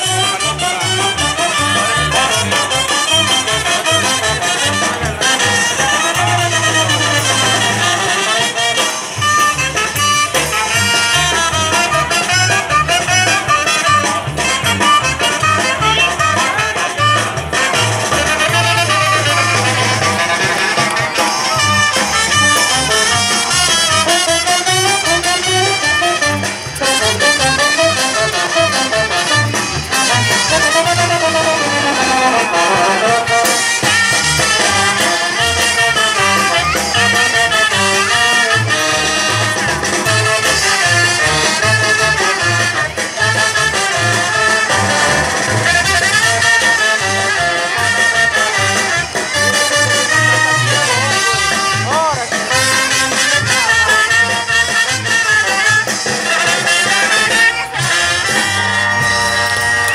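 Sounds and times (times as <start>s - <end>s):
brass band playing latin dance: 0.0s - 59.9s
regular drum beat: 0.0s - 59.9s.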